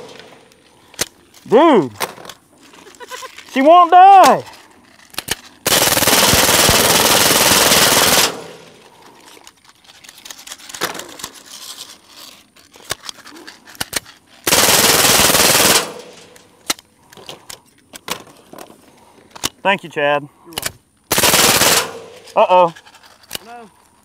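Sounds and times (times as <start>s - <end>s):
suppressed automatic gunfire: 5.6s - 8.8s, 14.5s - 16.3s, 21.1s - 22.2s.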